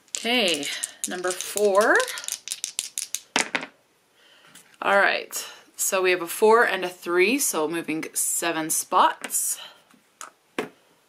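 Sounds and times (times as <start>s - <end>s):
dice shaken in a hand: 0.0s - 3.7s
dice rolling into a fabric tray: 0.0s - 3.8s.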